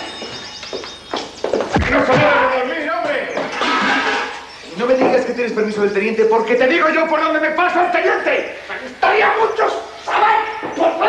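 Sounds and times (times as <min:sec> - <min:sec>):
footsteps: 0:00.0 - 0:04.3.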